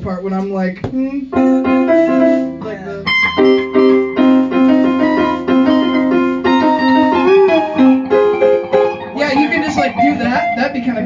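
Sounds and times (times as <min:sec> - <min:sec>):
electric piano chords: 0:01.2 - 0:11.0.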